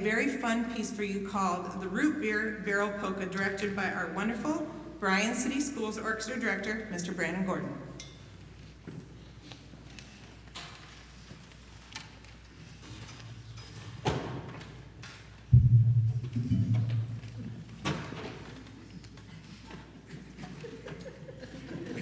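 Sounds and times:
heavy thud with low boom: 15.5 - 17.4.

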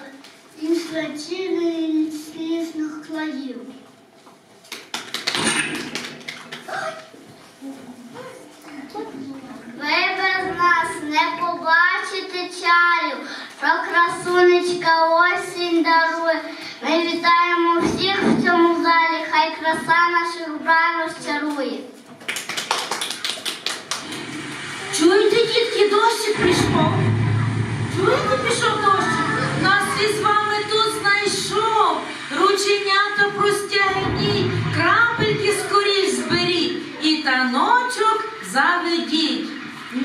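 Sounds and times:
child reciting into microphone: 0.0 - 3.8, 6.7 - 22.1
hand clapping: 4.6 - 6.8, 22.2 - 24.3.

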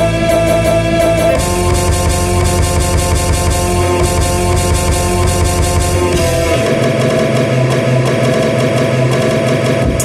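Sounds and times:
steady held tone: 0.0 - 9.8
distorted churning texture: 0.0 - 10.0
loud electronic music: 0.0 - 10.0.

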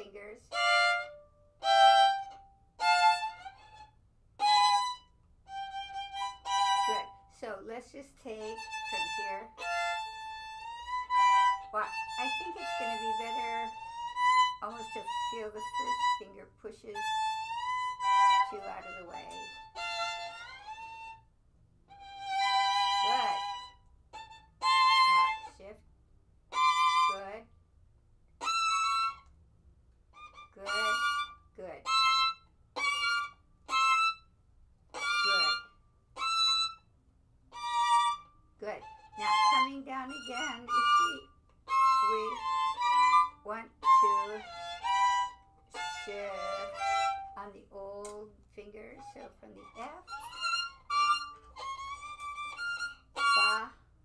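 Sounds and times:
violin notes sliding in pitch: 0.0 - 7.3, 8.3 - 21.2, 21.9 - 25.7, 26.5 - 27.4, 28.4 - 29.3, 30.2 - 34.2, 34.9 - 36.8, 37.5 - 47.6, 48.8 - 53.8
violin short bowed notes: 0.0 - 21.3, 21.9 - 25.8, 26.5 - 27.4, 28.4 - 29.3, 30.2 - 34.3, 34.9 - 36.9, 37.5 - 53.8.

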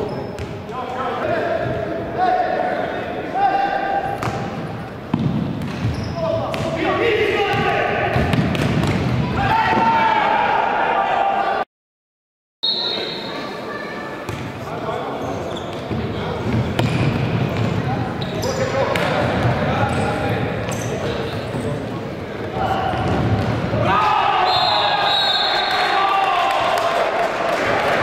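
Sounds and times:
players shouting with echo: 9.2 - 11.6, 23.7 - 28.0.

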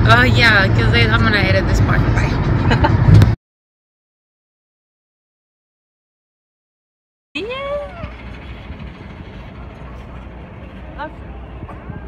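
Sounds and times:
vehicle rumble from inside cabin: 0.0 - 3.4, 7.4 - 12.0.

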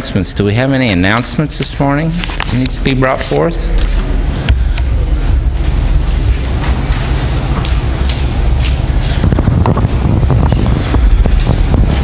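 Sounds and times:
low rumble of room noise: 0.0 - 12.0.

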